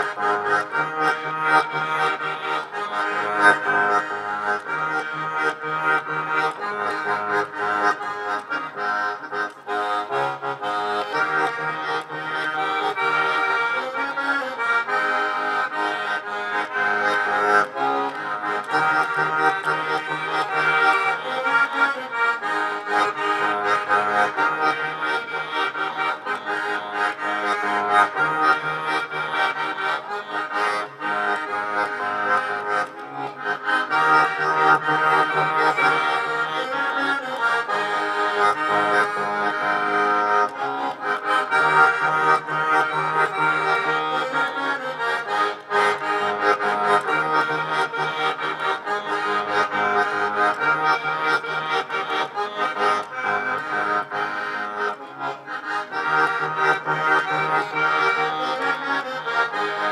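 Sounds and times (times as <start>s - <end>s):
button accordion folk tune: 0.0s - 59.9s.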